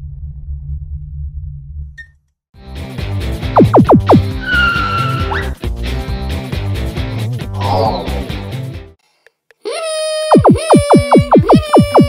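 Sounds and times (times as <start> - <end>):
held electronic tone: 3.6 - 4.2, 10.3 - 12.0.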